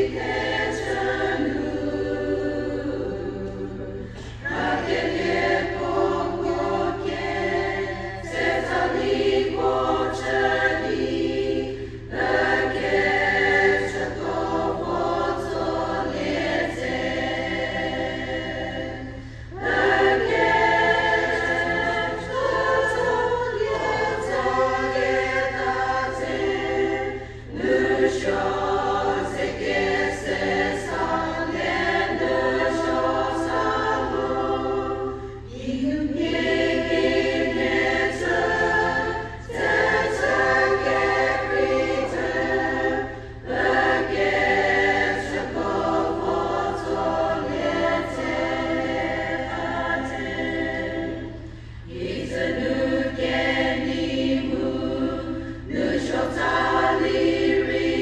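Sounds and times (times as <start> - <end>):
women's choir singing a hymn: 0.0 - 58.0.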